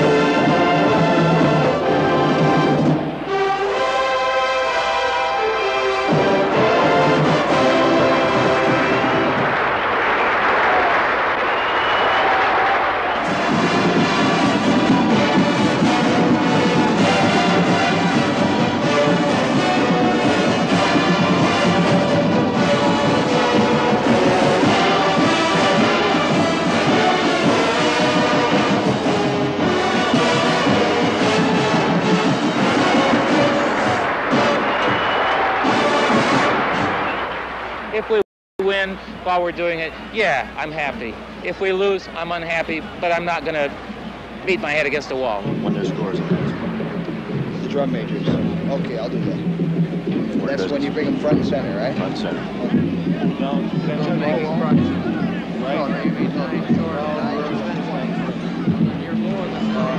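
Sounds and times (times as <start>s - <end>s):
bugles playing harmonised brass: 0.0s - 37.6s
drum line playing: 6.0s - 59.9s.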